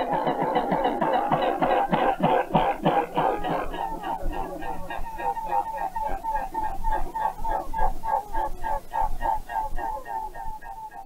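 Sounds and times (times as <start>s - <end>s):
bird clucking calls: 0.0s - 11.0s.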